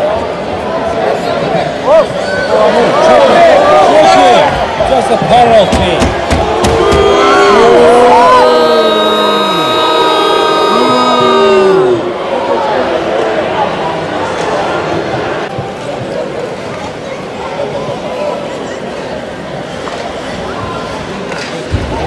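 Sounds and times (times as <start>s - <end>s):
crowd hubbub: 0.0s - 22.0s
voices calling out: 5.7s - 12.9s.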